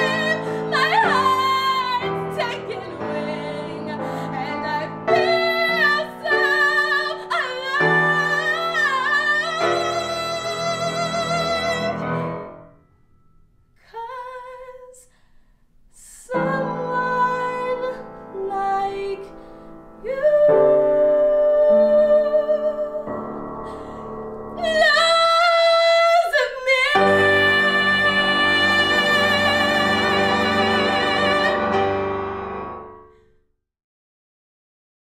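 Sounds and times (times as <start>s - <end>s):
woman singing a long note: 24.6s - 31.7s
strings and piano accompaniment: 26.9s - 33.1s.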